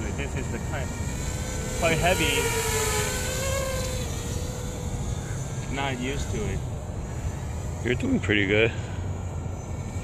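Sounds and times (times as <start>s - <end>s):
drone propellers whining buzz: 0.0s - 10.0s.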